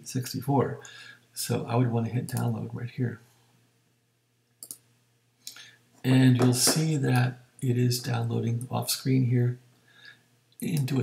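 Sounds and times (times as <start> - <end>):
faint mouse clicks: 4.6 - 5.6.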